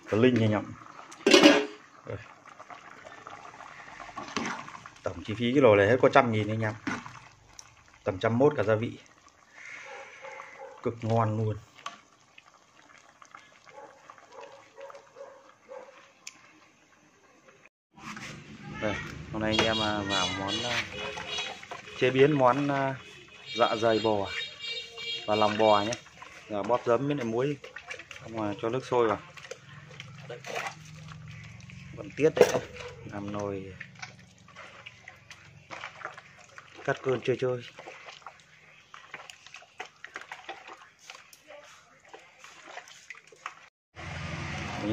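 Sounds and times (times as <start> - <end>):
wet squelching and sloshing: 0.0 - 16.6, 18.0 - 44.9
dog barking faintly: 9.6 - 11.0, 13.6 - 16.2, 32.4 - 33.2.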